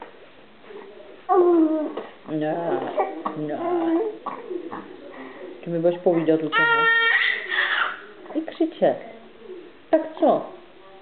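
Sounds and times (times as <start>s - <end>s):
baby whimpering: 1.3s - 4.9s, 6.5s - 8.1s.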